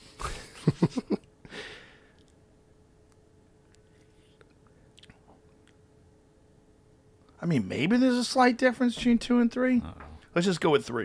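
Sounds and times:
man breathing: 1.4 - 2.3.

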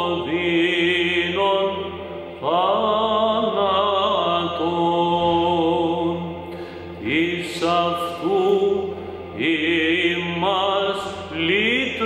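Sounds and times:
steady low drone: 0.0 - 12.0
man chanting: 7.0 - 12.0.

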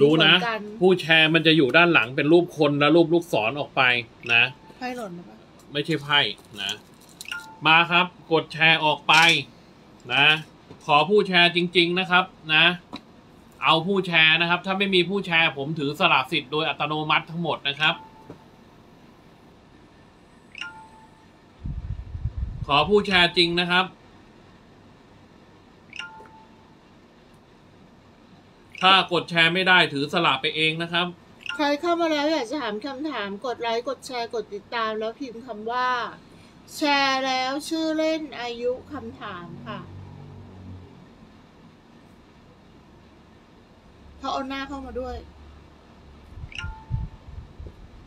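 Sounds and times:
faint low hum: 0.0 - 48.0.

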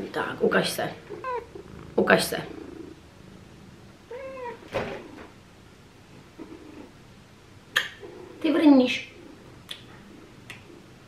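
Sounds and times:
cat meowing: 1.1 - 1.5, 4.1 - 4.7.

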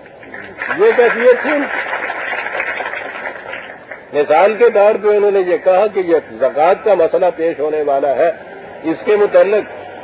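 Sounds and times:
audience noise: 0.0 - 4.4.

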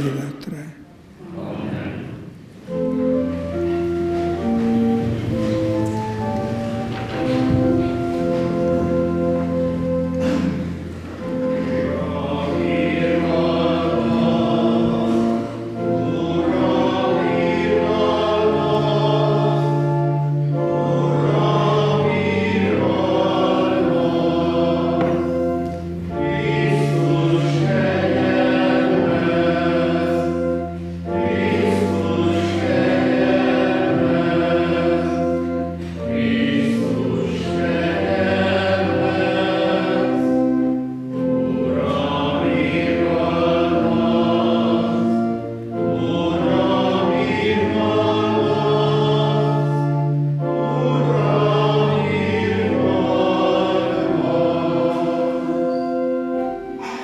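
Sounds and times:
held low accompaniment notes: 0.0 - 57.0
choir singing: 1.0 - 57.0.

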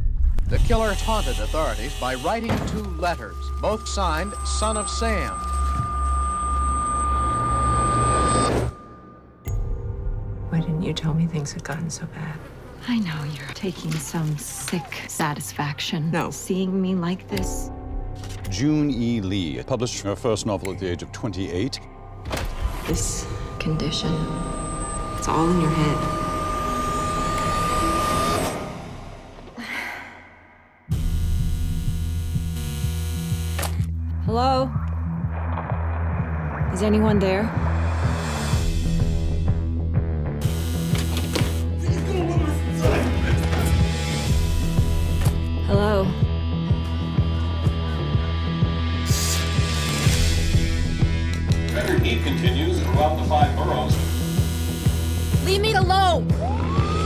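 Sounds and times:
low rumble drone: 0.0 - 13.0, 21.5 - 29.6, 34.1 - 41.0
intercom buzzer: 0.7 - 9.3, 23.0 - 28.9, 30.9 - 33.8, 40.4 - 41.8, 53.6 - 56.0
high-pitched ringing tone: 0.9 - 10.1, 22.9 - 28.7.

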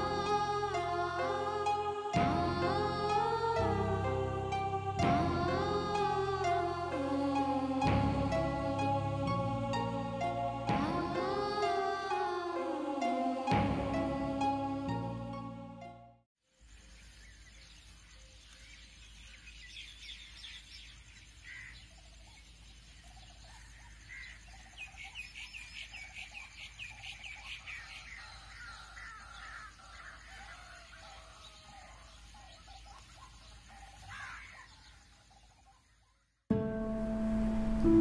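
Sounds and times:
low steady hum: 36.5 - 38.0.

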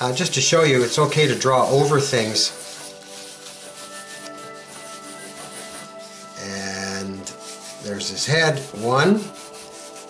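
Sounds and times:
soft background music: 0.0 - 10.0
pen scratching on paper: 0.7 - 10.0.

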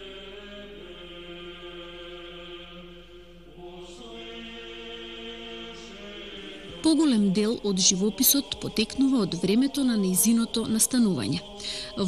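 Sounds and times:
voices singing a chant: 0.0 - 12.0.

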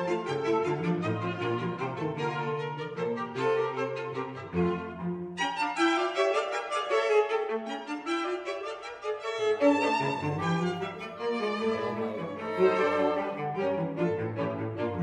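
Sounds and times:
violin melody: 0.0 - 15.0
cello bowing: 8.2 - 15.0.

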